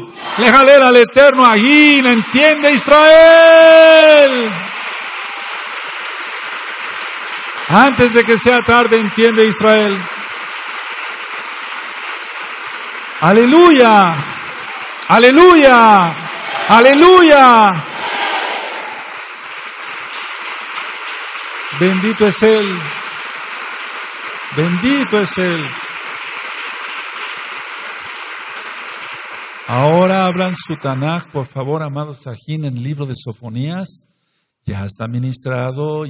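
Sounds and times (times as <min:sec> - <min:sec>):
person speaking: 0:01.3 - 0:04.7, 0:13.2 - 0:18.0, 0:21.8 - 0:23.0, 0:24.5 - 0:25.8
steady hiss: 0:01.3 - 0:31.2.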